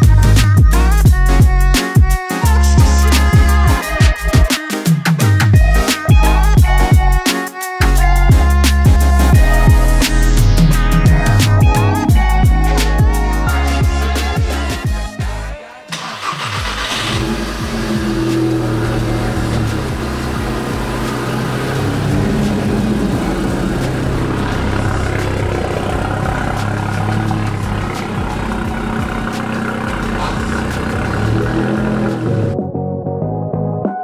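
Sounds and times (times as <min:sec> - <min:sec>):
car engine starting and revving: 0:15.9 - 0:32.6.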